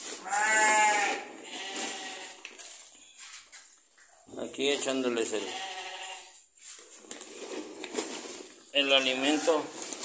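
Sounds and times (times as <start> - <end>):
sheep bleating: 0.2 - 2.5, 5.3 - 6.4, 9.0 - 9.7
feed sack rustling: 6.6 - 10.0.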